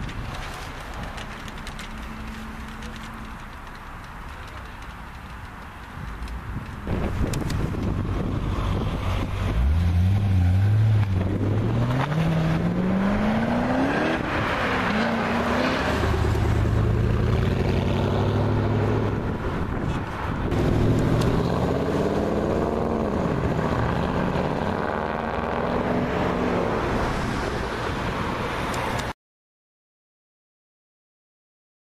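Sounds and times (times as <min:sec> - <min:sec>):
car engine accelerating: 0:06.8 - 0:19.4, 0:20.4 - 0:26.7.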